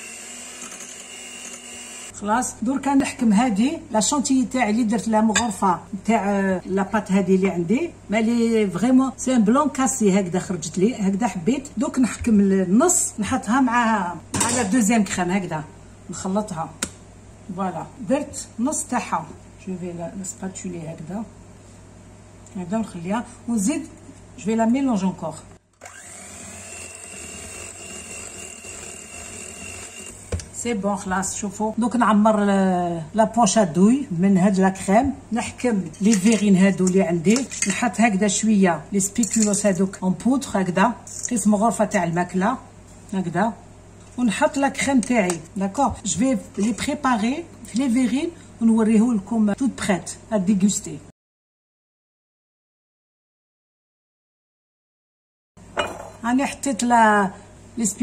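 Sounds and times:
electric hand mixer whipping cream: 0.0s - 2.1s, 25.8s - 30.3s.

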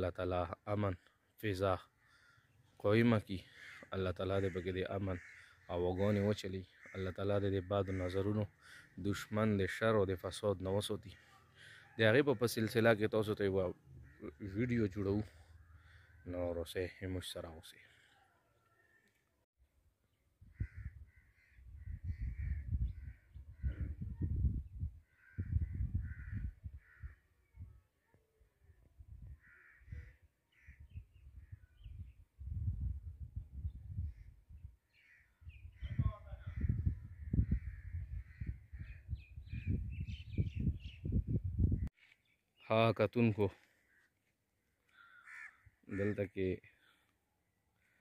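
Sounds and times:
crows cawing: 1.0s - 9.6s, 11.1s - 19.2s, 20.5s - 24.0s, 25.0s - 27.4s, 29.3s - 31.7s, 34.1s - 39.3s, 43.5s - 47.1s, 47.8s - 48.0s
wind buffeting microphone: 20.4s - 27.8s, 30.7s - 34.8s, 35.4s - 41.9s.

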